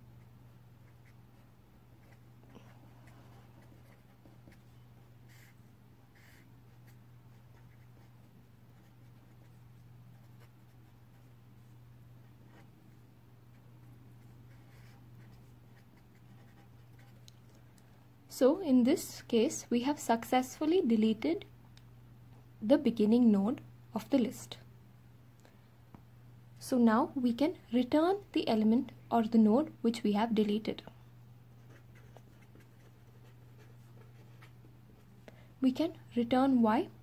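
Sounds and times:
steady low hum: 0.0s - 37.0s
pen scratching on paper: 2.0s - 11.3s, 14.2s - 17.2s, 31.6s - 35.1s.

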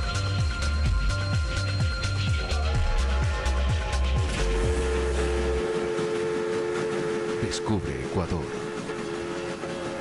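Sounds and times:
deep bass drone: 0.0s - 6.2s.

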